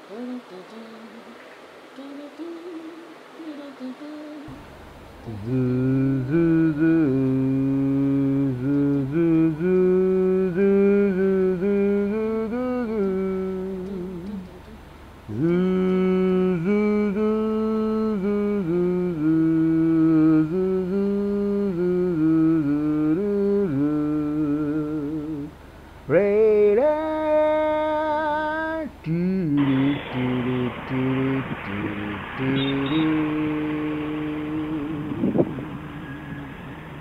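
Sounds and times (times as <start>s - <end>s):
person humming a tune: 0.0s - 4.6s, 5.2s - 36.6s
person singing without words: 0.0s - 4.6s, 5.2s - 36.9s
steady hiss: 0.0s - 37.0s.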